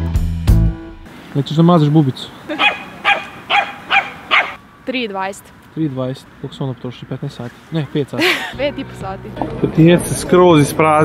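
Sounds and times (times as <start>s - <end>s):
small dog barking: 2.5s - 4.6s.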